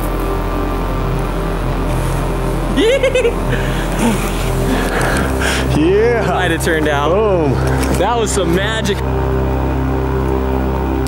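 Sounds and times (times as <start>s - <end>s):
held synth tones music: 0.0s - 11.0s.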